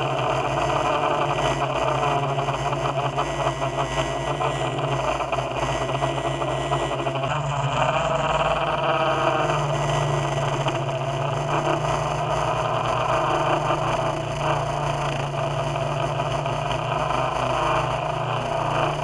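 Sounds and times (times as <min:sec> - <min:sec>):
drone propellers buzzing: 0:00.0 - 0:19.0.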